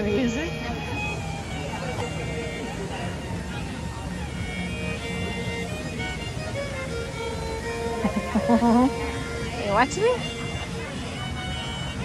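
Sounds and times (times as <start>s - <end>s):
murmur of people talking: 0.0s - 12.0s
violin slow melody: 0.0s - 12.0s.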